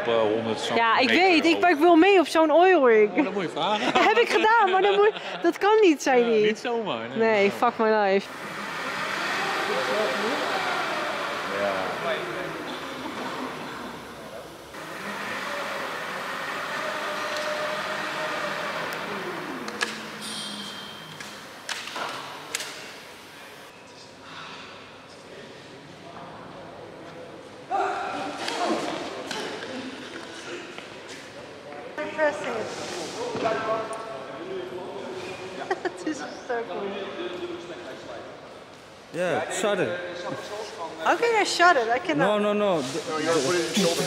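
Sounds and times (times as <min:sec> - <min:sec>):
voices echoing in a hall: 0:00.0 - 0:44.0.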